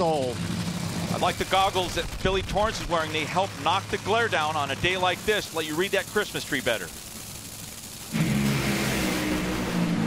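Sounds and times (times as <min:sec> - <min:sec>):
dragster engines roaring: 0:00.0 - 0:10.0.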